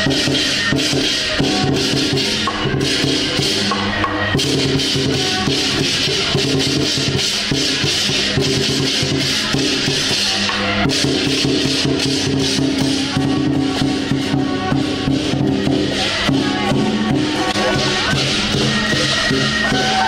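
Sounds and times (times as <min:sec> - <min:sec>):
loud drumming and percussion: 0:00.0 - 0:20.0.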